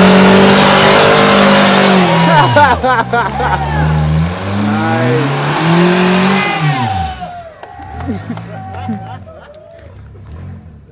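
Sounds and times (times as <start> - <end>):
buggy engine revving: 0.0 - 10.9
tyres churning dirt: 0.0 - 10.9.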